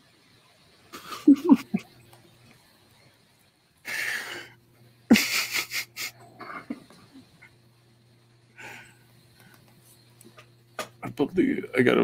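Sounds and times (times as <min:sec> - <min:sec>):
breathy puffs: 0:03.8 - 0:04.6
breath hiss: 0:03.8 - 0:06.2, 0:08.5 - 0:09.8.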